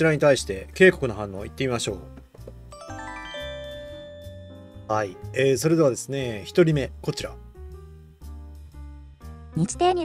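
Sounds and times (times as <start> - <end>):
quiet background music: 0.0 - 10.0
bell-like chime jingle: 2.7 - 5.2.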